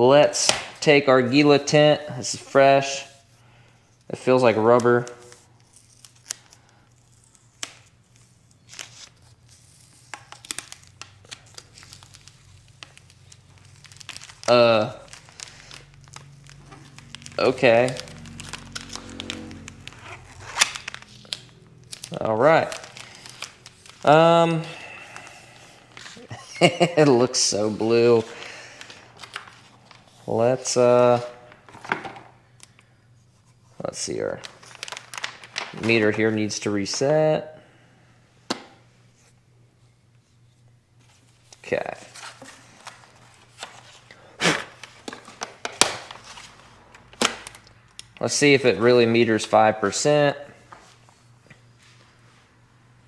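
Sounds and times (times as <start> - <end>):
plastic film crinkling: 2.8 - 32.9, 33.8 - 37.0, 41.0 - 50.0
film and plastic rustling and tapping: 10.0 - 20.0, 31.6 - 32.9, 34.4 - 36.2, 42.2 - 48.3.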